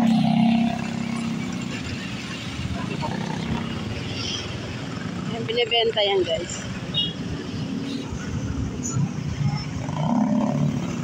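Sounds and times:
motorcycle engine rumble: 0.0 - 11.0
road and wind noise: 0.0 - 11.0.

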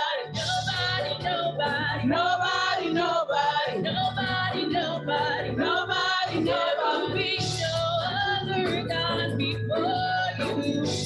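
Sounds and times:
voices singing along: 0.0 - 11.0
woman singing gospel song: 0.0 - 11.0
low musical accompaniment: 0.2 - 11.0.

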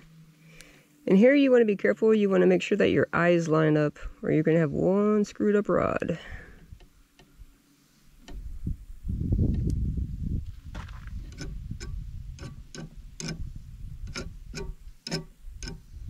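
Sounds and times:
low rumble: 8.4 - 14.5
sharp ticking clicks: 11.3 - 15.8.

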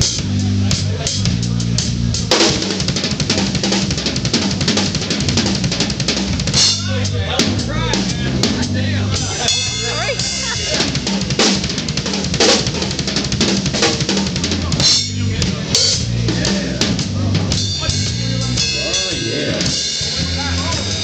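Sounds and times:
drum kit: 0.0 - 21.0
electric bass notes: 0.0 - 21.0.

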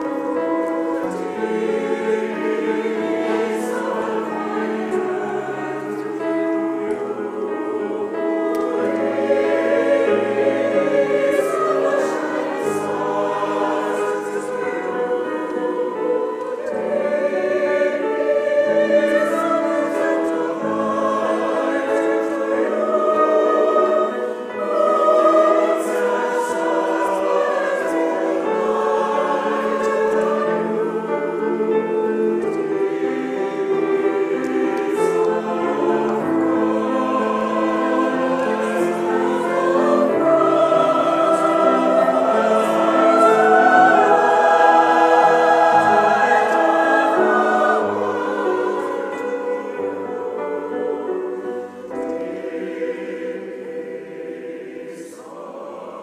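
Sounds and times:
church choir singing: 0.0 - 56.0.

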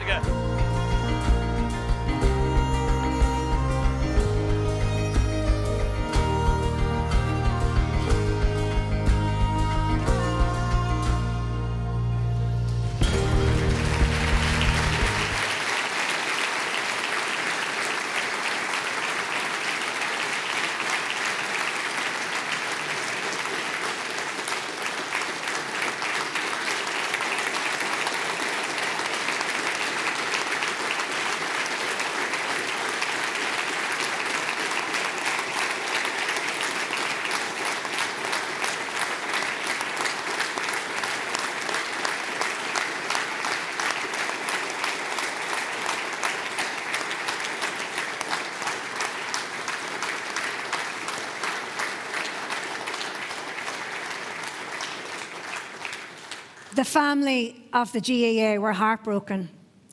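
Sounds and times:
audience applauding: 0.0 - 11.3, 12.7 - 56.8.

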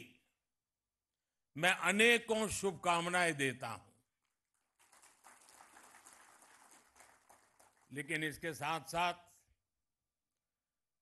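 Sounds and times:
faint audience applause: 4.6 - 8.4.

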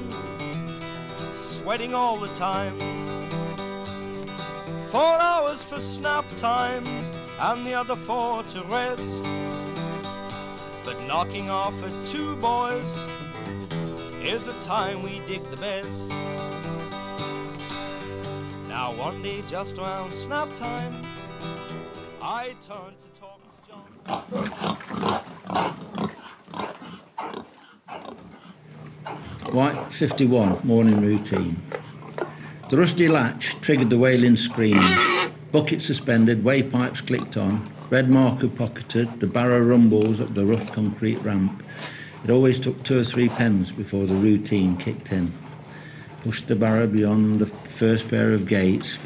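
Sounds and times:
pigs grunting: 0.0 - 1.8, 23.4 - 49.0
acoustic guitar strumming: 0.0 - 24.4
person singing: 1.3 - 3.0, 4.8 - 9.6, 10.8 - 13.2, 14.1 - 16.3, 18.6 - 21.0, 22.1 - 24.0.

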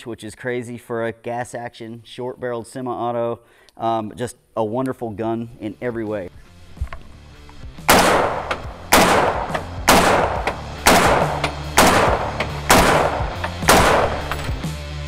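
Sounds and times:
rifle shots with ringing tail: 7.9 - 14.5.

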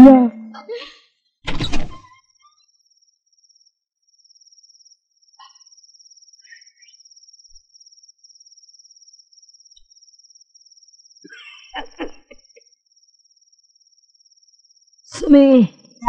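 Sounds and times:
crickets trilling: 2.1 - 16.0.

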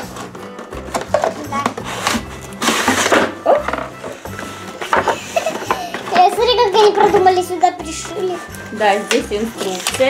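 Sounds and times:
cardboard scraping and rustling: 0.0 - 7.4
background music: 0.0 - 10.0.

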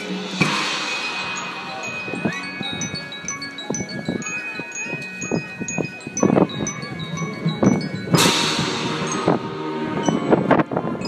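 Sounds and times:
light percussion strikes: 0.0 - 10.8
wind chimes shimmering: 0.0 - 11.0.

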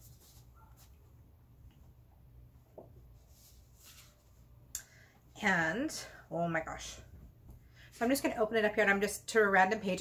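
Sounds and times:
paper pages rustling: 3.2 - 4.4.

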